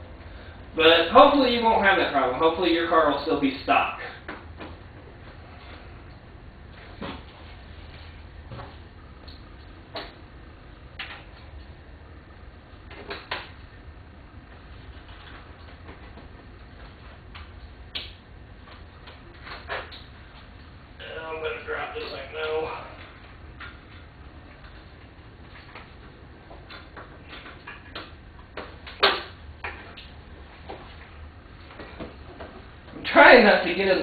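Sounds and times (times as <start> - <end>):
low steady hum: 0.0 - 34.0.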